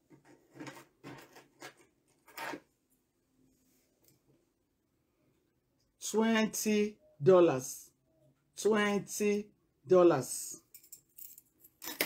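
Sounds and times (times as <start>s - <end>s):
earrings rattling: 10.7s - 12.0s.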